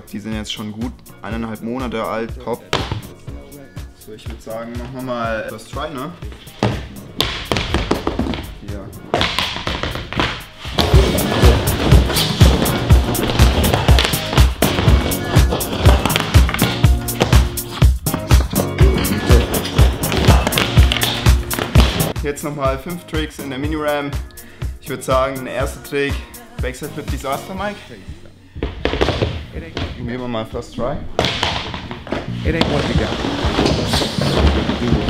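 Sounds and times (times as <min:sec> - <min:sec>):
music with steady beat: 0:00.0 - 0:29.4.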